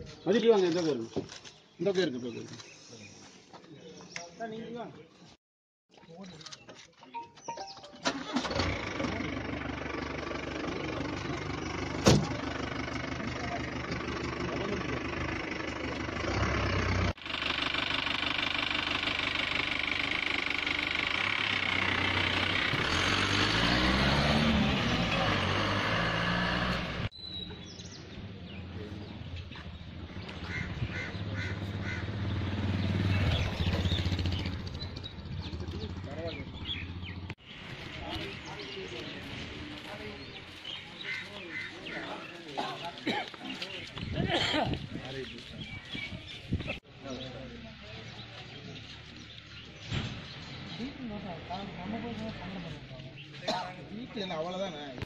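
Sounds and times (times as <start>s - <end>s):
vehicle engine revving: 8.2s - 27.1s, 30.0s - 37.4s
crowd talking: 37.7s - 49.8s.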